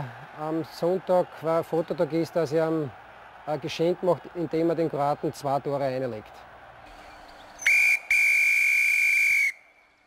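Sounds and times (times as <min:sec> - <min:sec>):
whistle blast: 0:07.6 - 0:09.8.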